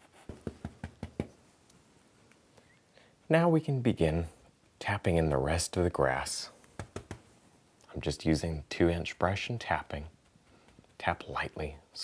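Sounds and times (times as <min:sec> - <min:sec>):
brush tapping on palette: 0:00.3 - 0:01.4.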